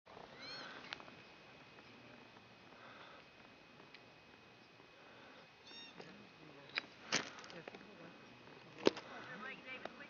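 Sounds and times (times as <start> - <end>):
pika squeaky call: 5.6 - 6.0.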